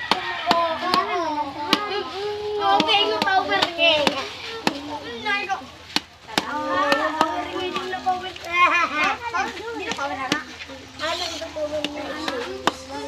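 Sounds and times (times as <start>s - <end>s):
children chattering: 0.0s - 13.0s.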